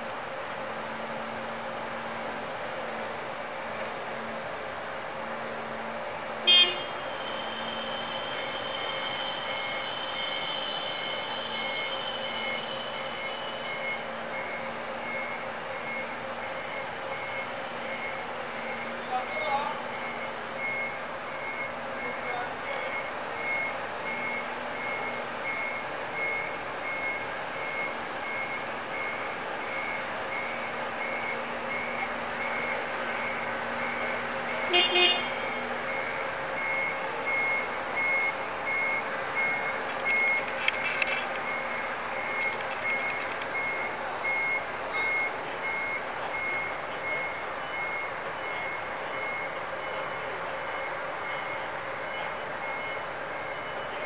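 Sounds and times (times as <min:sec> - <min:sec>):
forklift warning beeps: 0:06.5 - 0:54.0
high ringing tone: 0:06.8 - 0:15.2.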